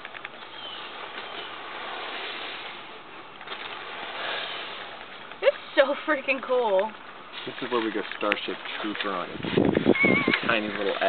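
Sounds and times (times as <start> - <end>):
steady hiss: 0.0 - 9.7
faint bird chirp: 0.3 - 1.7.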